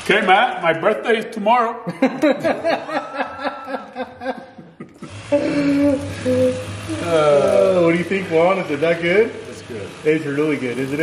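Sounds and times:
electric knife buzzing: 2.6 - 11.0
person humming: 5.1 - 7.8.

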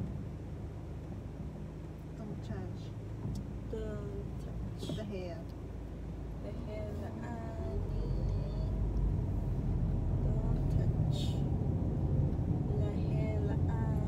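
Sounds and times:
car engine and road rumble: 0.0 - 14.0.

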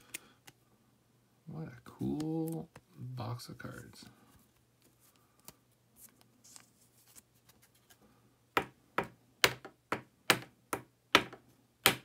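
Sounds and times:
faint handling rustle: 3.5 - 8.2.

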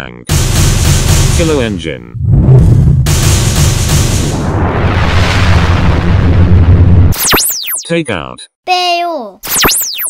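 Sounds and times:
explosion with deep rumble: 0.3 - 7.2.

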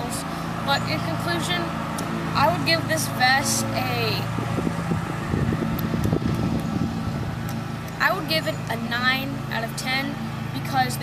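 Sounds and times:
low mechanical hum: 0.0 - 11.0
wind rumbling on microphone: 3.8 - 7.7.

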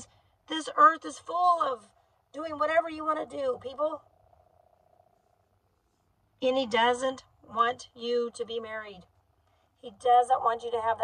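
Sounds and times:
faint low hum: 0.0 - 11.0
faint steady tone: 0.0 - 11.0.

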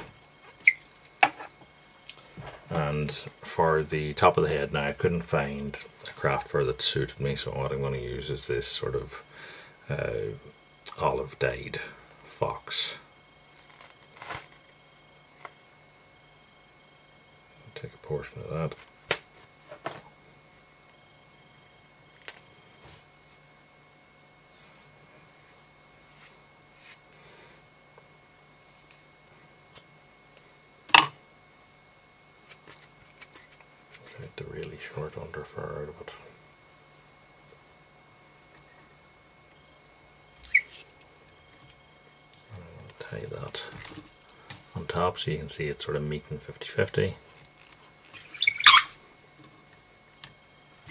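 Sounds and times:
short sharp squeak: 40.4 - 40.8, 48.1 - 49.0.

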